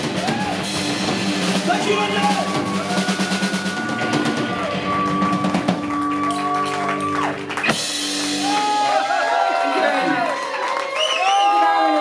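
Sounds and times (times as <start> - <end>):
drum kit beat: 0.0 - 9.2
electric guitar sliding notes: 1.1 - 8.9.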